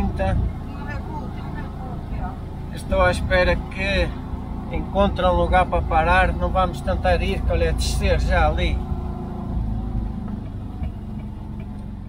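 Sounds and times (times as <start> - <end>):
engine droning from inside cab: 0.0 - 12.0.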